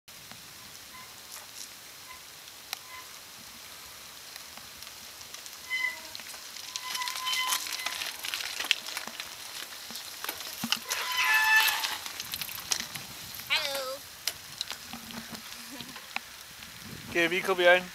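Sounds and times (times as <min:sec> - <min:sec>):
bicycle tyres hissing on wet road: 0:00.1 - 0:17.9
high-pitched brake squeals: 0:02.8 - 0:03.2, 0:05.7 - 0:08.0, 0:10.9 - 0:12.0
person calling out: 0:13.5 - 0:14.0.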